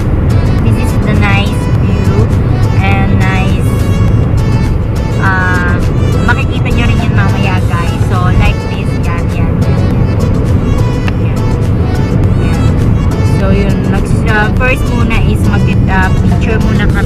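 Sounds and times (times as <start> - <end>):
background music: 0.0 - 17.0
car road and engine rumble: 0.0 - 17.0
woman's voice: 0.6 - 3.8, 5.2 - 9.5, 13.3 - 17.0.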